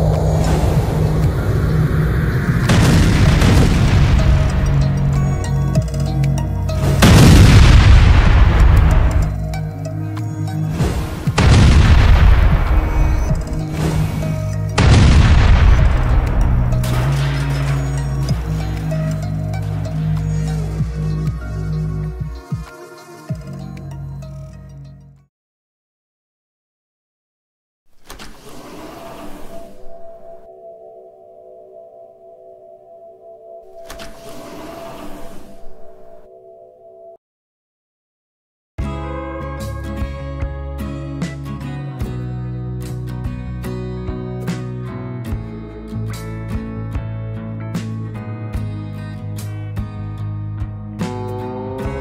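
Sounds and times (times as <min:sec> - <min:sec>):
explosion booms: 0:00.0 - 0:04.9, 0:06.9 - 0:09.3, 0:11.3 - 0:14.2, 0:14.8 - 0:17.6
background music with low tones: 0:00.0 - 0:25.3, 0:38.8 - 0:52.0.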